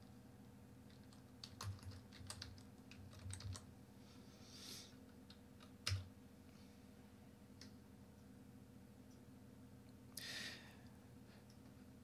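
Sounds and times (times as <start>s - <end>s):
faint keyboard typing: 0.8s - 3.7s, 5.0s - 6.1s.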